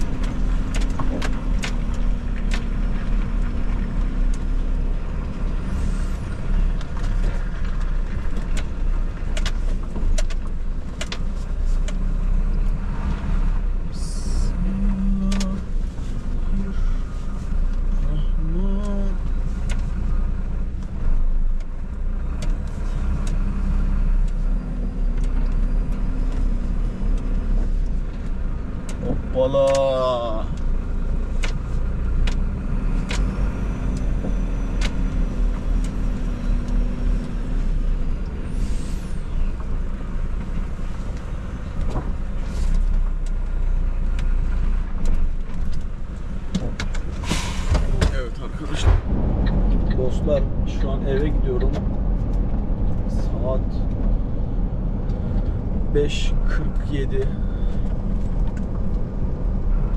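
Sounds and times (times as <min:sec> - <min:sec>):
diesel truck engine running: 0:00.0 - 0:59.9.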